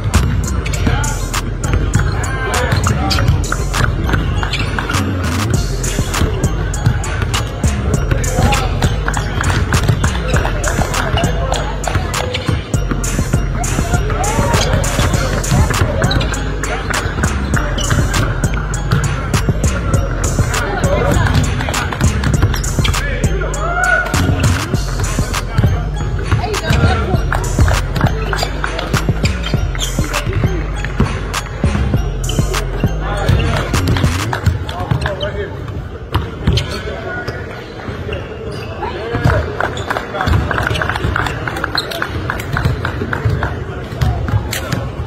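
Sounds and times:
background music: 0.0 - 34.8
voices: 0.0 - 45.0.

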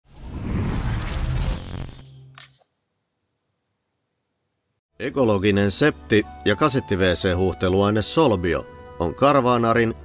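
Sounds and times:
high electronic tone gliding upward: 0.8 - 4.8.

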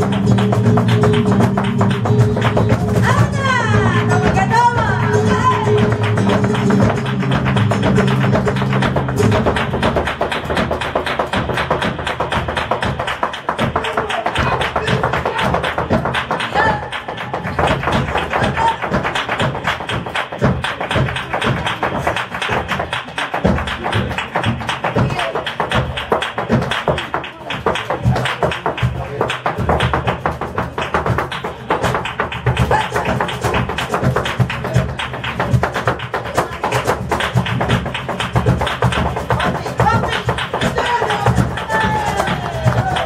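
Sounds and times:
flamenco footwork tapping floor: 0.0 - 43.0.

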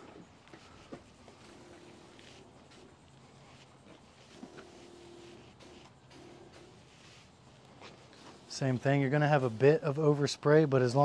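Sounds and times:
sprayer pump hum: 0.0 - 10.3.

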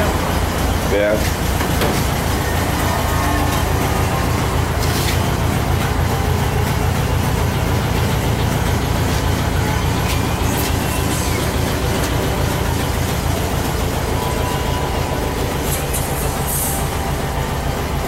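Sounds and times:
car engine idling: 0.0 - 18.0
brief high hisses: 15.7 - 16.9.

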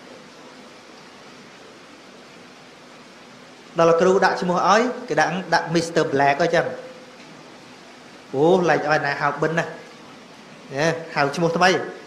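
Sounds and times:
steady background hiss: 0.0 - 12.0
man speaking: 3.8 - 7.0, 8.3 - 9.8, 10.7 - 12.0.

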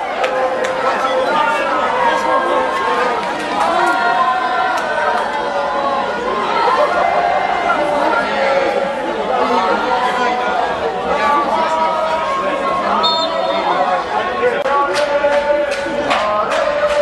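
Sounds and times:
babble of many voices: 0.0 - 17.0.

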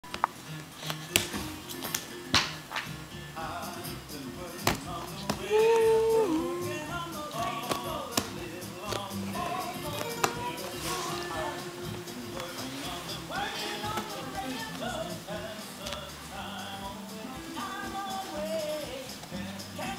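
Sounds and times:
background music: 0.0 - 19.9
hands slapping leather ottoman: 0.1 - 3.0, 4.6 - 5.6, 7.3 - 11.2.

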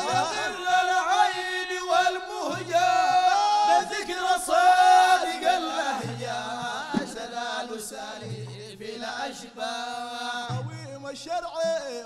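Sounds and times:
frame drums: 0.0 - 9.2, 10.5 - 11.3
men chanting: 0.0 - 11.6.

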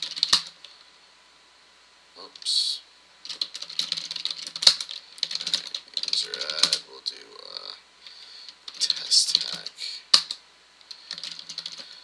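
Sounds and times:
computer keyboard typing: 0.0 - 0.6, 3.3 - 6.8, 8.7 - 11.9.

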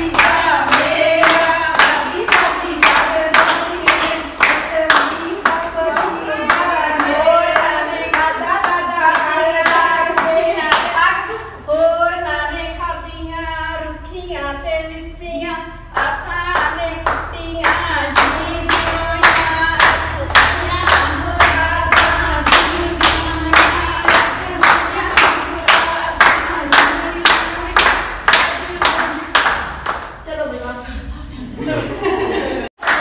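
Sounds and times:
rhythmic hand clapping: 0.0 - 11.1, 15.9 - 30.3, 32.8 - 33.0
women singing folk song: 0.0 - 29.3.

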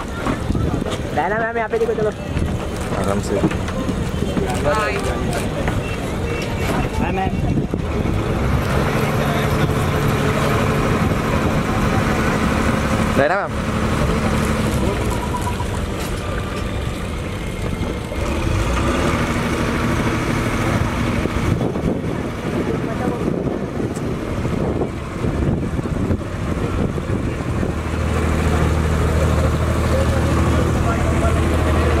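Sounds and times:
people talking: 0.0 - 18.0, 20.3 - 32.0
boat engine humming: 0.0 - 32.0
people chattering: 0.0 - 32.0.

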